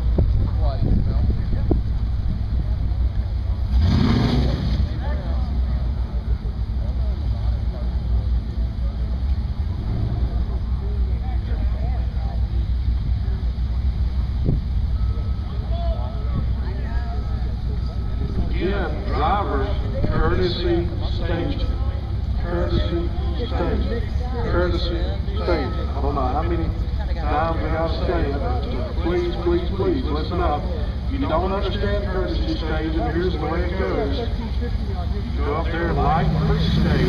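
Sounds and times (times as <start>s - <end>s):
car engines idling: 0.0s - 37.0s
faint repeating beep: 14.9s - 16.5s.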